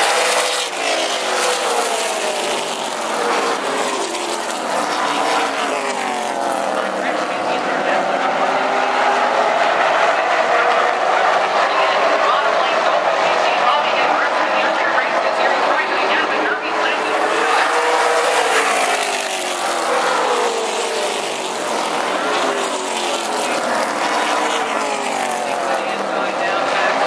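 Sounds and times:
race car engines passing: 0.0s - 27.0s.

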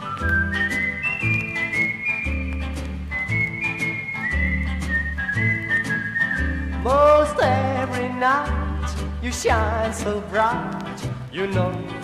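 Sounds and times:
whistled melody: 0.0s - 8.0s.

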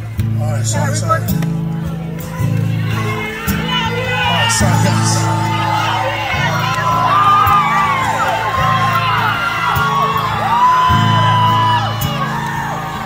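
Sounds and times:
live band sustained chords: 0.0s - 13.0s
crowd whooping and cheering: 1.6s - 13.0s.

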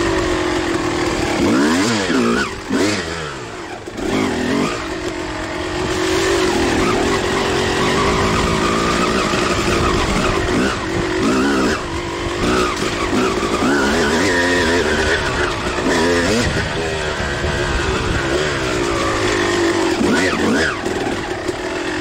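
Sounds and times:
dirt bike engine revving: 0.0s - 22.0s.

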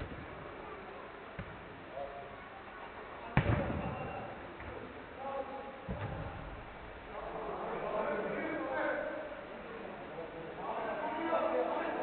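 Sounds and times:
football kicked with thud: 3.4s - 4.0s, 5.9s - 6.4s.

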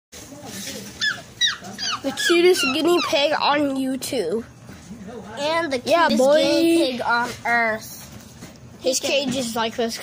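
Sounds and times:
guinea pig squealing: 0.9s - 3.6s.

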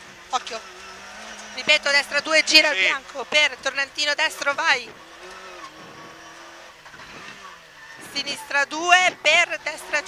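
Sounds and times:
car engine drone from cabin: 0.0s - 10.0s.

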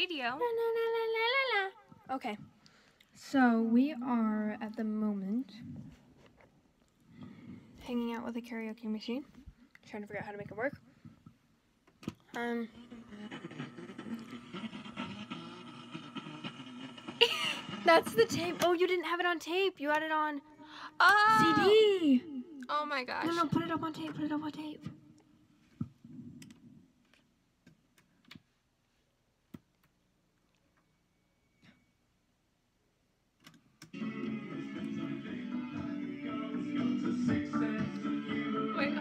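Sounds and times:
wavering sound from small speaker: 12.4s - 18.6s.

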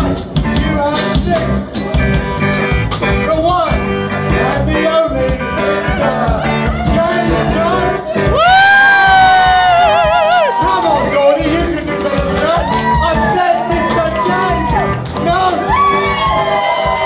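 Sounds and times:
live rock band playing: 0.0s - 17.0s
men singing: 4.3s - 8.5s, 10.6s - 15.7s.

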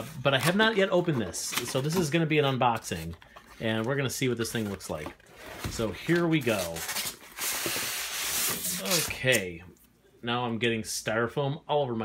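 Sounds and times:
styrofoam scraping on cardboard: 7.3s - 9.4s.

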